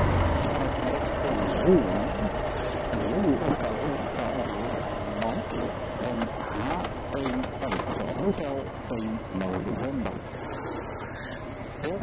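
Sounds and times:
motorcycle engine running: 0.0s - 9.3s
muffled talking: 0.4s - 12.0s.

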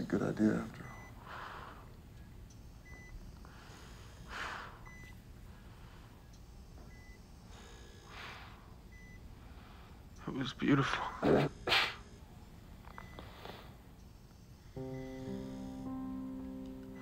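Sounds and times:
patient monitor high beeps: 0.0s - 17.0s
soft breathing: 0.8s - 2.2s, 2.9s - 10.2s, 12.8s - 14.1s.

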